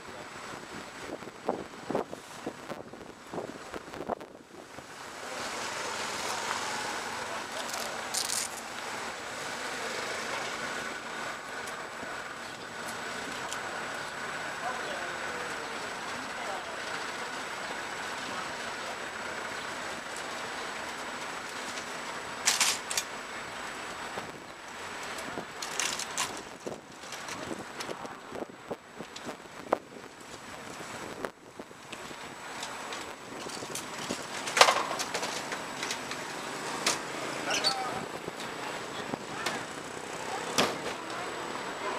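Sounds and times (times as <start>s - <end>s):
indistinct voices: 35.3s - 41.9s.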